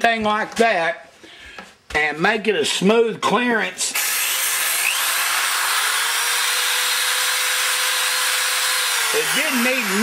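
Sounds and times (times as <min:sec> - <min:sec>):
power drill whirring: 0:04.0 - 0:10.0.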